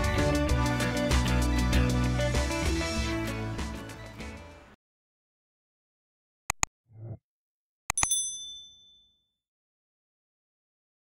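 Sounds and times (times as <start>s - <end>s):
synthetic bell ding: 7.9s - 9.2s.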